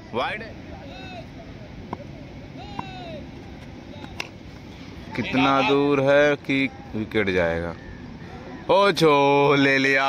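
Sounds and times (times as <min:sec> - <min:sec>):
steady background noise: 0:00.0 - 0:10.0
distant drawn-out shout: 0:00.5 - 0:10.0.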